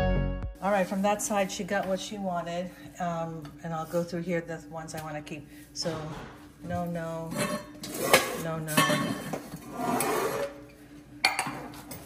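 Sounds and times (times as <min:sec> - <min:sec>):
metal pots and pans handled: 0:07.3 - 0:09.6.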